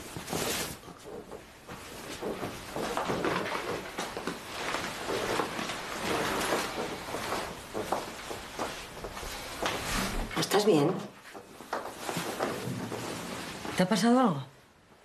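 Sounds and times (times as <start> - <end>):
clothes and bedclothes rustling: 0.0 - 15.0.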